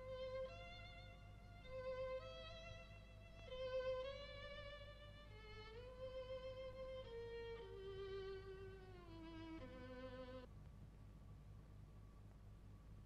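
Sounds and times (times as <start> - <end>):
violin playing slow melody: 0.0 - 10.5.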